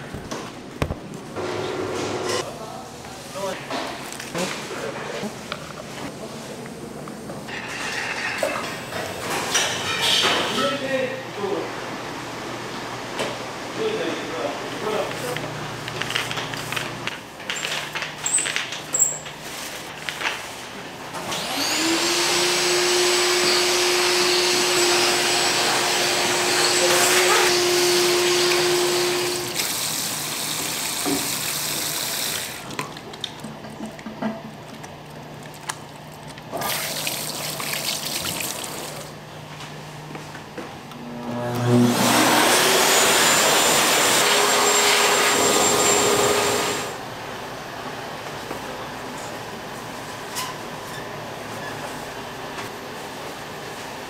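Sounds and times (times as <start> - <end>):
vacuum whining: 21.2 - 29.6, 40.9 - 47.0
tap water running: 27.6 - 32.7, 36.5 - 39.2.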